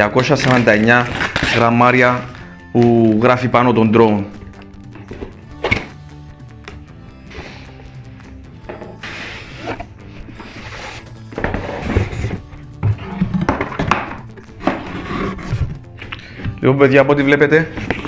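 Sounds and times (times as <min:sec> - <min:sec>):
background music: 0:00.0 - 0:18.0
cardboard rustling and sliding: 0:09.0 - 0:13.1, 0:14.6 - 0:15.8.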